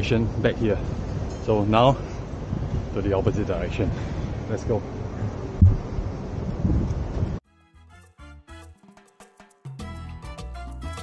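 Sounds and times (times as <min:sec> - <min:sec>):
wind rumbling on microphone: 0:00.0 - 0:07.4
background music with a beat: 0:07.5 - 0:11.0.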